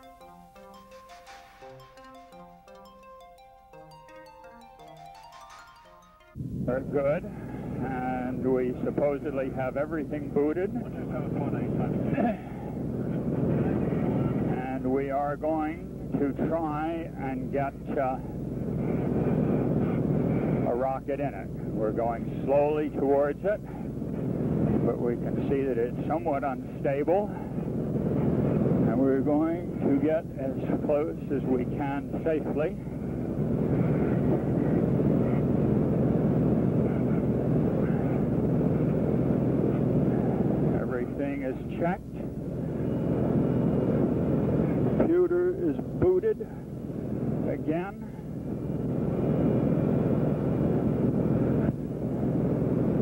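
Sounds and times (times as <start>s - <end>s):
aircraft engine drone: 6.2s - 53.0s
man laughing: 12.1s - 12.5s.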